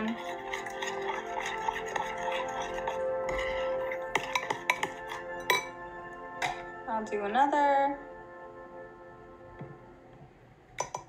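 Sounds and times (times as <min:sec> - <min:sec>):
spoon clinking against glass bowl: 0:00.0 - 0:05.8, 0:10.8 - 0:11.0
background music: 0:00.0 - 0:11.0.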